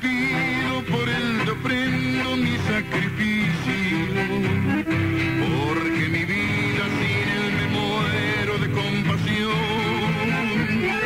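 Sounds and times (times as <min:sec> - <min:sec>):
accordion and guitar music: 0:00.0 - 0:11.0.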